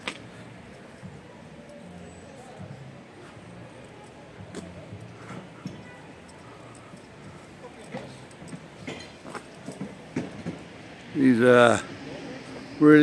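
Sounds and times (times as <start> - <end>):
faint voices talking: 0.0 - 13.0.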